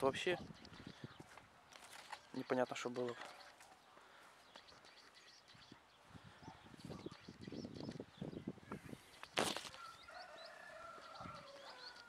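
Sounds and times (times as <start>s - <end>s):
high bird chirps: 4.4s - 12.0s.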